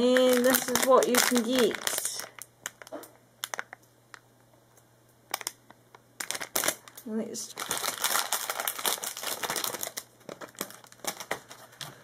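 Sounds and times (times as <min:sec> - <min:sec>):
foil packet crinkling: 0:00.0 - 0:03.8, 0:05.3 - 0:05.6, 0:06.2 - 0:11.8.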